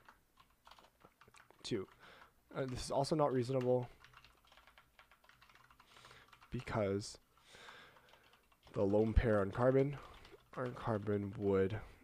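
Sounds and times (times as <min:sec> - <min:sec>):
faint keyboard typing: 0:00.0 - 0:12.0.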